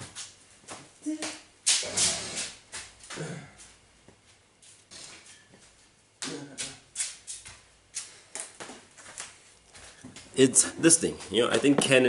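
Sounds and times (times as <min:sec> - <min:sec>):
footsteps: 0:00.0 - 0:12.0.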